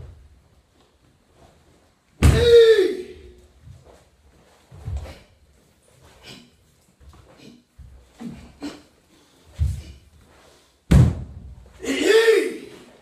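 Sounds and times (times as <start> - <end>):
bare feet thudding on wooden floor: 10.9 - 11.6.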